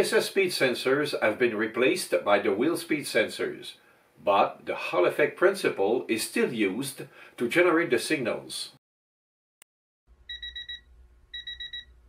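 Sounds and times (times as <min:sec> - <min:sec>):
quick high electronic beeps: 0:10.3 - 0:11.9.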